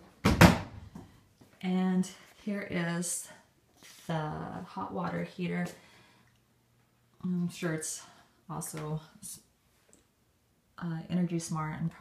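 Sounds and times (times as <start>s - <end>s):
person speaking: 1.6s - 5.8s.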